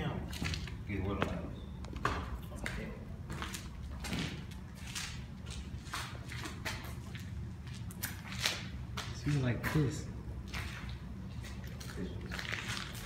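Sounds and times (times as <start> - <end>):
footsteps on leaves and concrete: 0.0 - 13.0.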